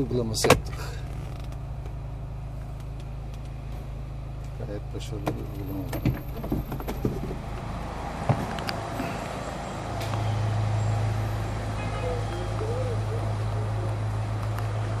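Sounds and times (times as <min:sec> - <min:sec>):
low engine hum: 0:00.0 - 0:15.0
street traffic noise: 0:00.0 - 0:15.0.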